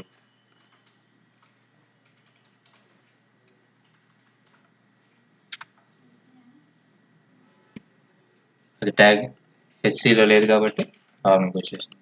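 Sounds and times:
keyboard keystrokes: 0.0 - 3.2.

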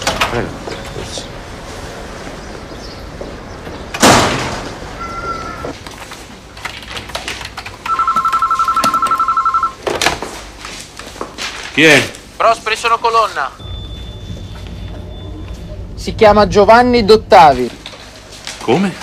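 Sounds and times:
loud thud: 4.0 - 4.8
telephone ringing: 7.8 - 9.8.

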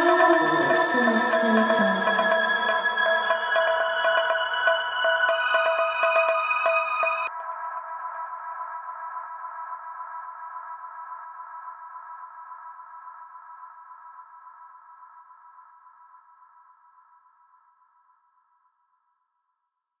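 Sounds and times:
held synthesizer chord: 0.0 - 7.3.

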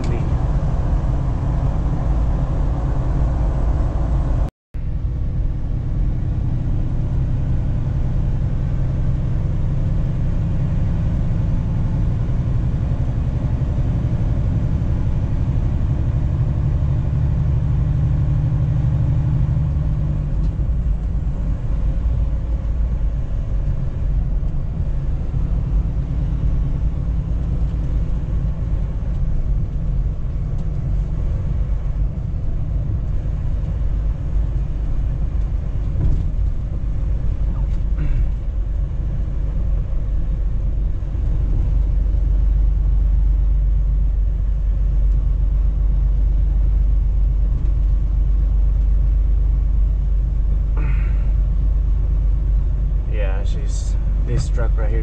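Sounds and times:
truck diesel engine drone: 0.0 - 55.0.

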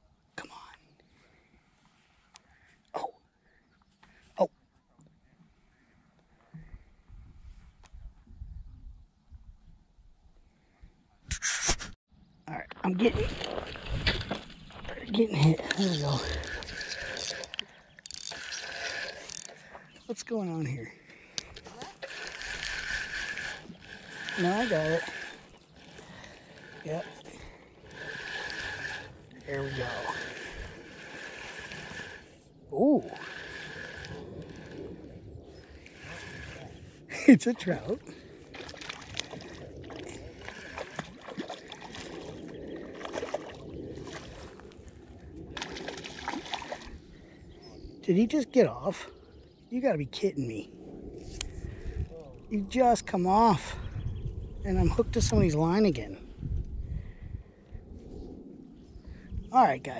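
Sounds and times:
fishing reel cranking whine: 15.4 - 19.9, 21.4 - 43.4
low rumble on microphone: 50.6 - 59.6.

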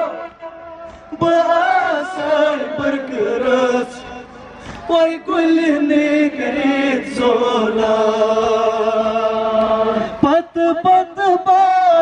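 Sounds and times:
men chanting a lament over loudspeaker: 0.0 - 12.0.

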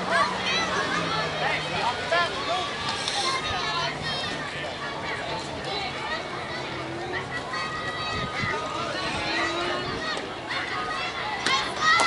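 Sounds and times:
people talking and calling out: 0.0 - 12.0
steady outdoor background hum: 0.0 - 12.0.

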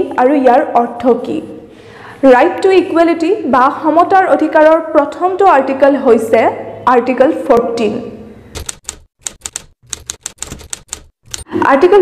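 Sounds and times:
typewriter key clicks: 8.6 - 11.5.

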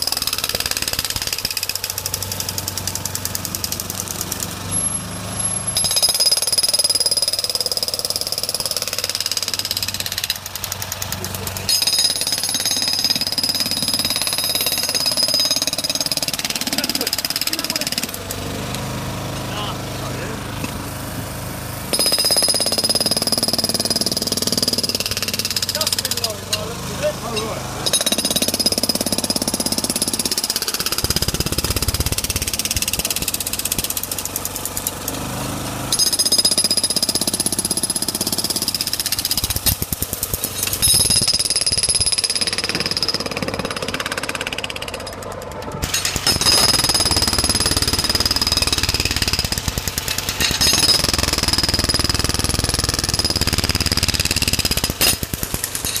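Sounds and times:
jackhammer hammering asphalt: 0.0 - 56.0.

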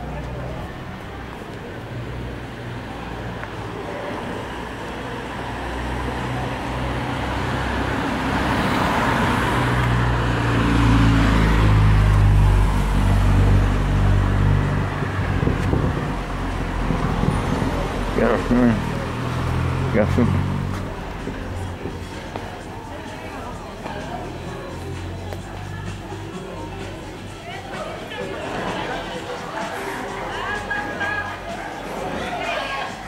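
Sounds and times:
vehicle engine and tyre noise: 0.0 - 33.0
vehicle passing close: 2.0 - 26.8.

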